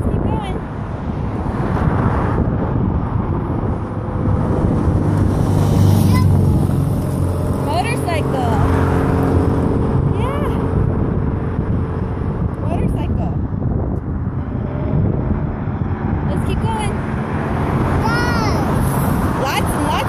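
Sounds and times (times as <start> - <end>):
wind rumble on microphone: 0.0 - 20.0
vehicle engine running: 2.4 - 20.0.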